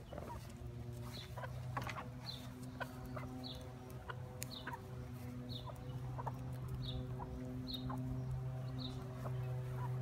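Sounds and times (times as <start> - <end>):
hens clucking: 0.0 - 10.0
steady low hum: 0.0 - 10.0.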